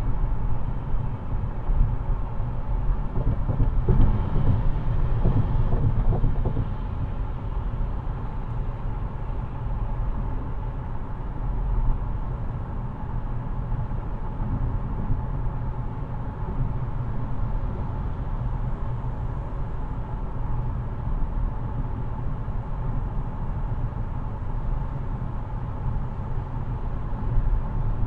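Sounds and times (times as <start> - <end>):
road and engine rumble in car: 0.0 - 28.0.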